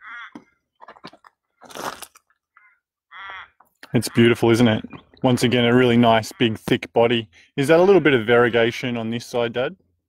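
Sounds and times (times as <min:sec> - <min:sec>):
footsteps on gravel: 0:00.8 - 0:02.3.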